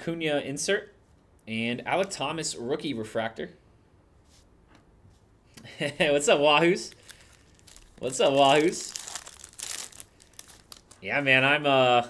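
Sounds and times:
foil wrapper tearing and crinkling: 6.9 - 11.0.

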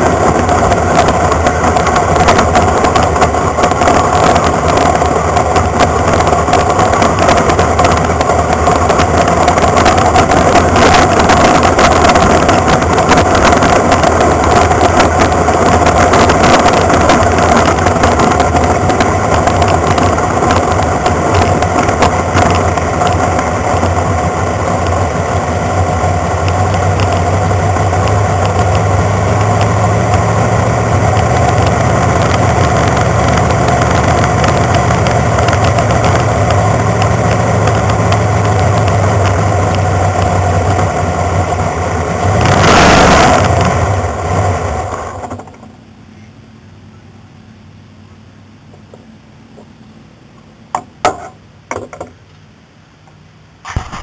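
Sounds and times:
race car engine running: 0.0 - 45.8, 53.7 - 54.0.

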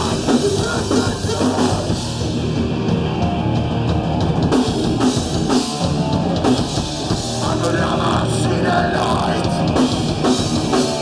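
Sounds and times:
bass guitar: 0.0 - 11.0
electric guitars: 0.0 - 11.0
pounding drum kit: 0.0 - 11.0.

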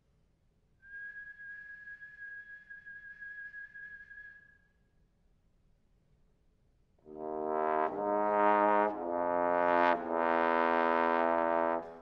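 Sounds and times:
high steady whistling tone: 0.8 - 5.0.

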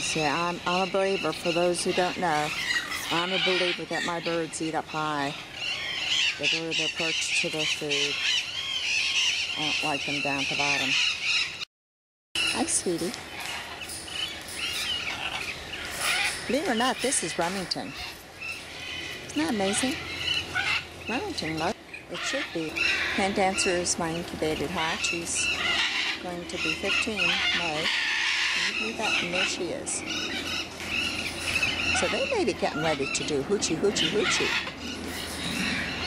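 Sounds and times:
parrot calling: 0.0 - 11.6, 12.4 - 36.0.

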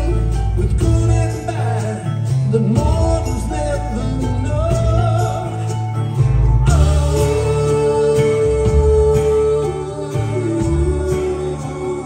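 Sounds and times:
bass guitar: 0.0 - 12.0
drums: 0.0 - 12.0
guitar: 0.0 - 12.0
man singing: 0.0 - 12.0
woman singing: 6.7 - 12.0.

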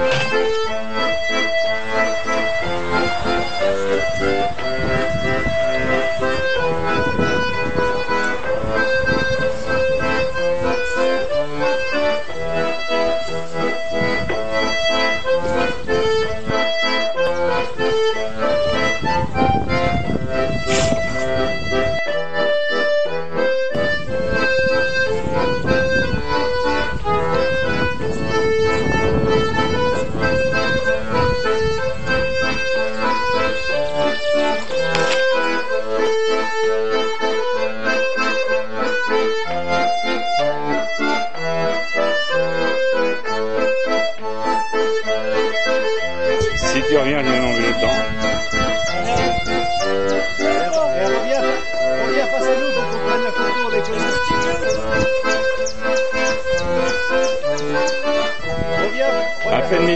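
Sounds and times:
accordion music: 0.0 - 59.9.

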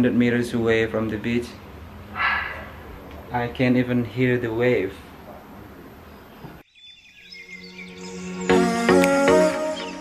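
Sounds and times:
birds chirping: 2.0 - 3.2, 4.0 - 10.0
background music: 7.5 - 10.0.

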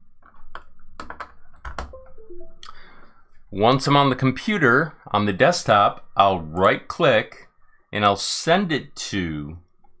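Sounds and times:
electronic device-connected chime: 1.9 - 2.9.

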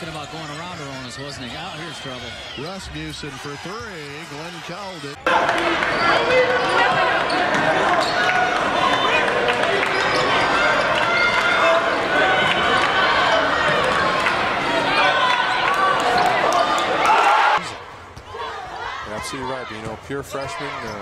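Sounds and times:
voices in arena: 0.0 - 21.0.

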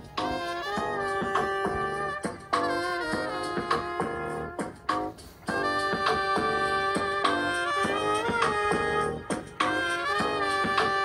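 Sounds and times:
upbeat horn-led music: 0.0 - 11.0.

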